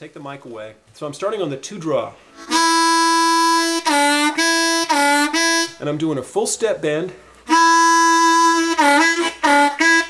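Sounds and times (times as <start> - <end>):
blues harmonica draw note: 2.3 - 5.8, 7.5 - 10.0.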